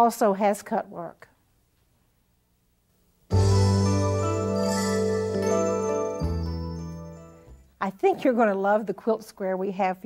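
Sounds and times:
musical jingle with sustained chords: 3.3 - 7.7.

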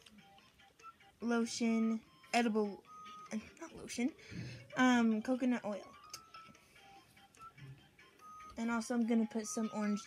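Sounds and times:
faint musical tones: 0.0 - 10.0.

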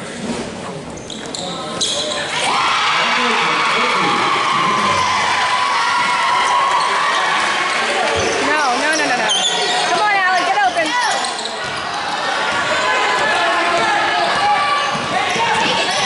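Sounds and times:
spectators shouting: 2.3 - 8.5, 11.8 - 16.0
sneakers squeaking on hardwood: 8.1 - 12.9, 13.7 - 16.0
basketball bouncing: 12.5 - 15.9.

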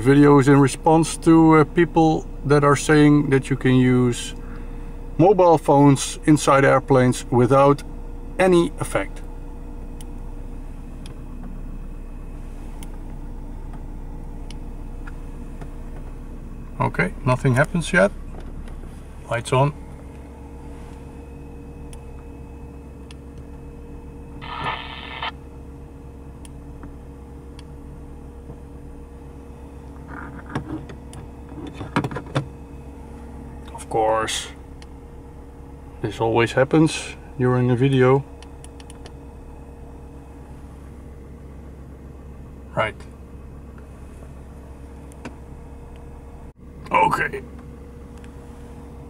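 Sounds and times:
car engine idling: 0.0 - 49.0.

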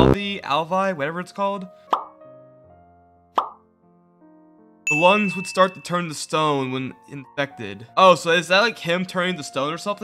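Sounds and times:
quiet background music: 0.0 - 10.0
short pop sound effect: 3.4 - 3.6.

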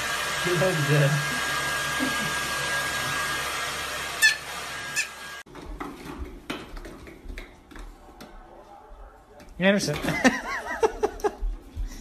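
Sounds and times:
hair dryer blowing: 0.0 - 5.5
high squeak: 4.2 - 5.2.

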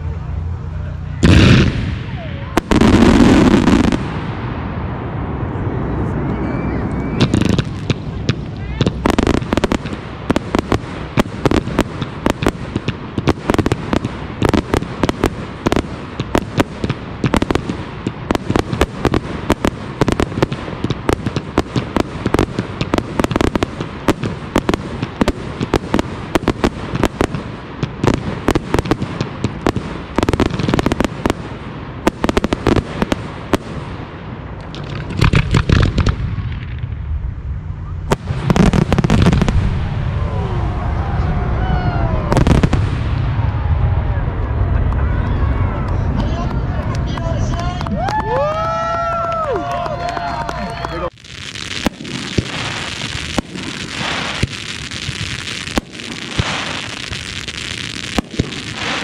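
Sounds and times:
fireworks crackling: 0.0 - 59.0
firework booms: 1.2 - 45.3, 51.1 - 59.0.

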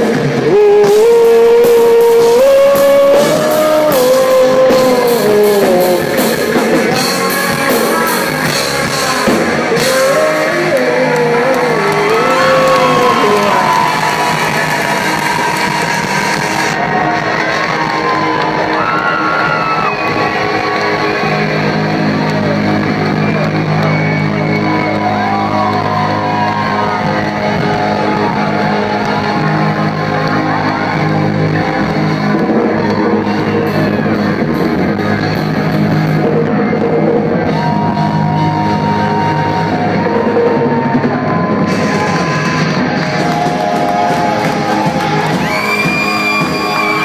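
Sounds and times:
live rock band playing: 0.0 - 47.0.

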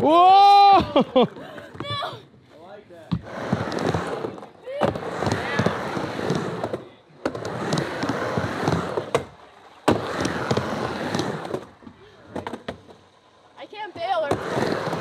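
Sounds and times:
skateboard wheels rolling on ramp: 0.0 - 15.0
skateboard clacking: 3.1 - 15.0.

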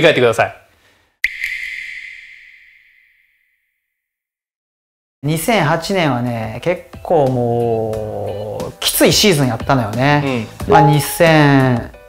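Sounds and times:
bell-like chime: 10.7 - 11.5.

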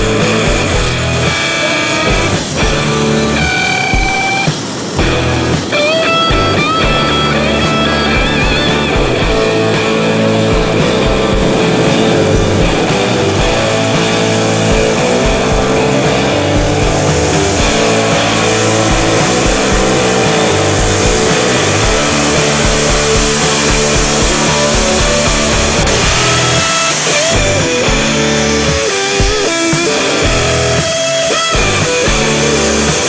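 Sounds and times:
rock music with electric guitar: 0.0 - 33.0.

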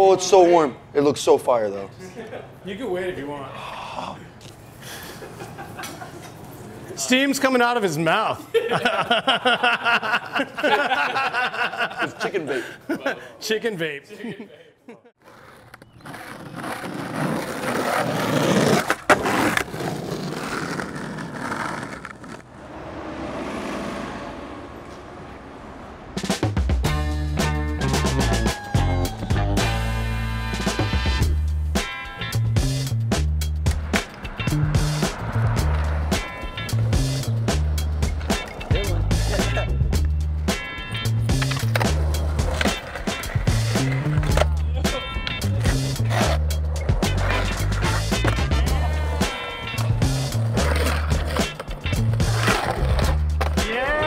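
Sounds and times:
wheels rolling on pavement: 15.2 - 26.8, 33.5 - 40.0, 40.6 - 54.0
music with repeating bass line: 26.6 - 42.6.

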